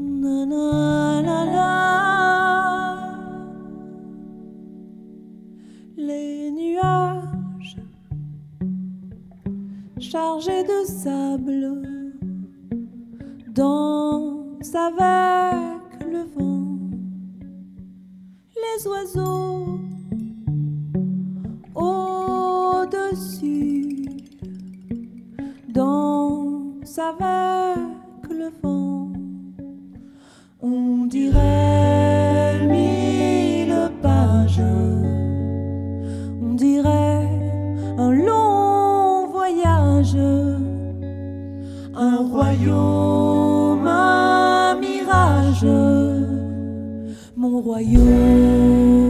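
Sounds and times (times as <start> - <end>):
electric guitar notes ringing: 23.5 - 25.5, 31.3 - 39.0, 39.8 - 47.3, 47.9 - 49.0
short breathy sound: 30.0 - 30.6
sustained electric guitar chord: 31.3 - 36.3, 47.9 - 49.0.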